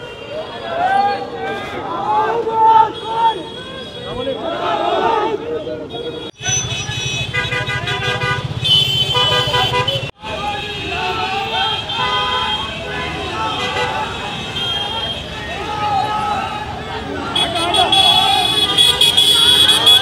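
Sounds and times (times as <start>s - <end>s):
men shouting and cheering: 0.4s - 6.6s, 9.3s - 20.0s
vehicle horns honking: 5.8s - 15.5s, 17.2s - 20.0s.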